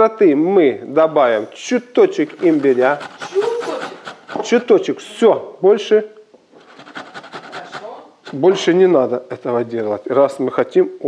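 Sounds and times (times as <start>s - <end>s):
root grated on metal grater: 2.3s - 4.7s.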